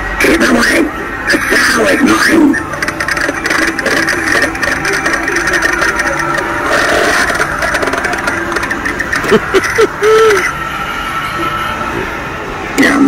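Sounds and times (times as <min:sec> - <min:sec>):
crackling engine-like drone: 0:00.0 - 0:13.0.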